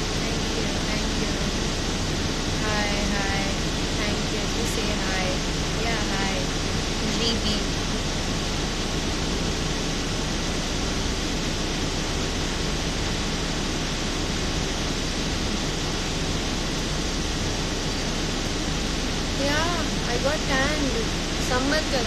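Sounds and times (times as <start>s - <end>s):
low hum: 0.0s - 22.0s
steady rushing noise: 0.0s - 22.0s.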